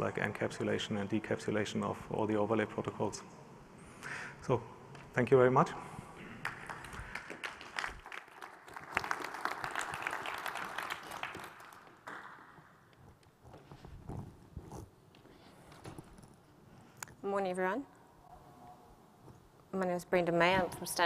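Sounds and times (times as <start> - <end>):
audience applauding: 6.2 - 12.6
soft knocks and shuffles: 13.0 - 16.9.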